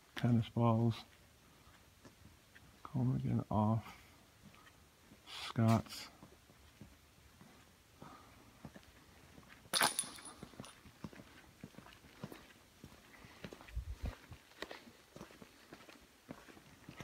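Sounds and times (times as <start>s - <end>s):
footsteps on bare floor: 10.4s - 17.0s.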